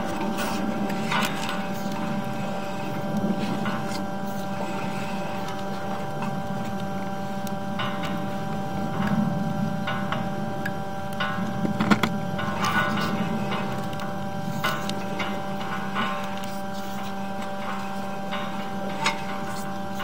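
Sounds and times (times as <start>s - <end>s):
electrical hum: 0.0s - 20.0s
cable clicks and rattles: 9.9s - 20.0s.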